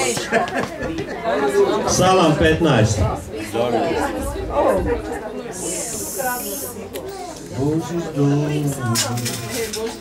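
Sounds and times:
low talking voices: 0.0 - 10.0.

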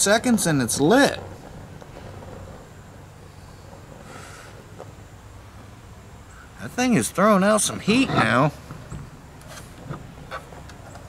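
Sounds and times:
faint even hiss: 0.0 - 10.1
steady low hum: 0.0 - 11.0
soft rustle: 0.7 - 5.8.

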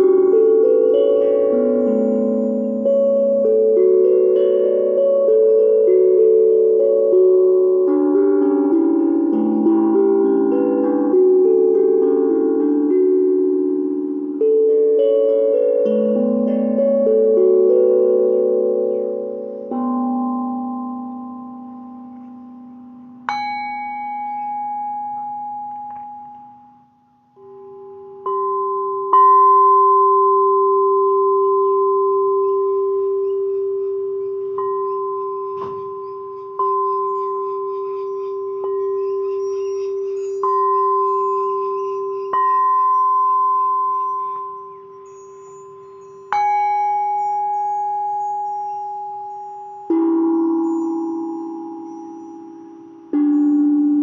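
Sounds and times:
low sustained bowl tone: 0.0 - 54.0
singing bowls struck with mallet: 18.1 - 54.0.

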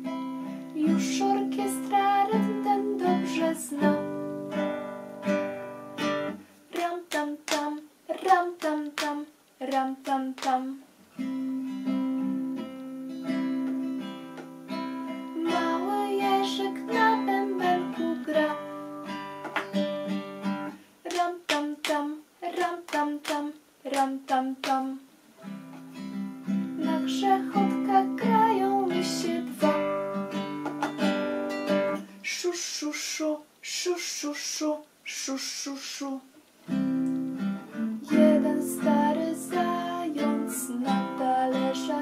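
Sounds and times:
classical guitar strumming chords: 0.0 - 6.5, 11.1 - 20.8, 25.4 - 32.2, 36.6 - 42.0
woman singing: 0.7 - 4.2, 6.7 - 10.8, 15.4 - 18.8, 21.1 - 25.0, 26.8 - 30.0, 37.9 - 42.0
sharp rhythmic taps: 6.8 - 10.6, 19.4 - 19.8, 30.6 - 31.0.

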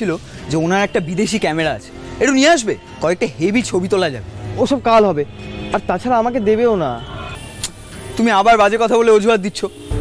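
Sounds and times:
man speaking: 0.0 - 7.1, 8.1 - 10.0.

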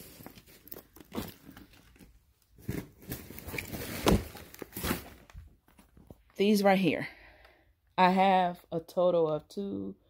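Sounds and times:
fabric rustling and crinkling: 0.0 - 6.3.

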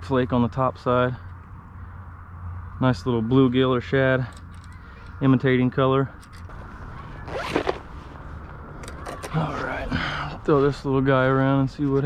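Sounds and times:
zipper on fabric bag: 7.1 - 7.9.

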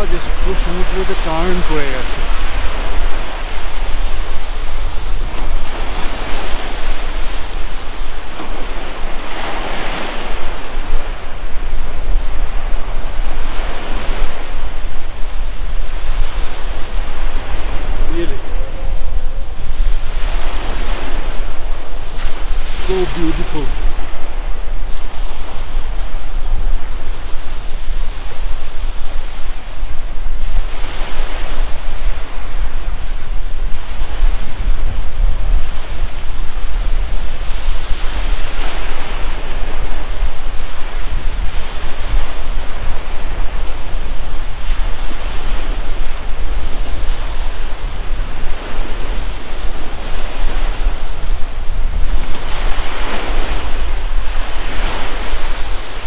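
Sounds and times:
wind buffeting microphone: 0.0 - 56.0
waves washing on gravel shore: 15.4 - 24.1.

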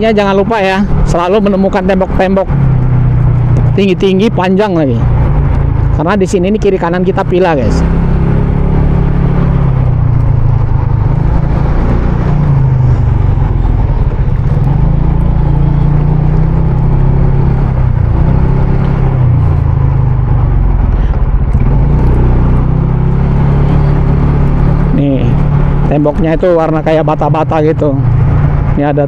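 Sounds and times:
motorcycle engine running: 0.0 - 29.0
steady rushing noise: 0.0 - 29.0.

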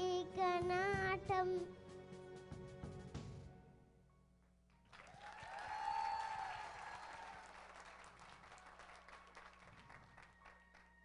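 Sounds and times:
audience applause: 4.9 - 11.0.

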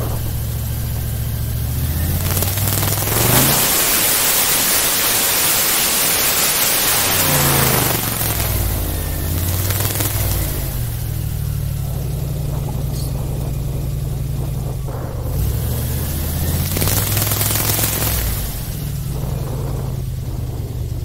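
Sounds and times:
airboat engine and propeller running: 0.0 - 21.0
loud rushing hiss: 0.0 - 21.0.

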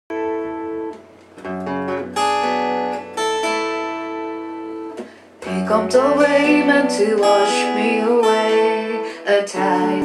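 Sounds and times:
acoustic guitar chords strummed: 0.1 - 10.0.

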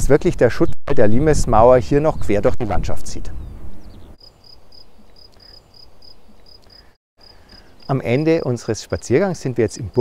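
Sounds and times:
cricket chirping: 4.2 - 10.0.

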